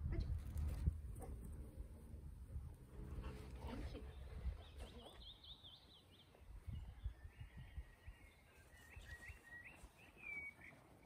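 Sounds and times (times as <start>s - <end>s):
wind rumble on microphone: 0.0s - 5.1s, 6.4s - 8.4s.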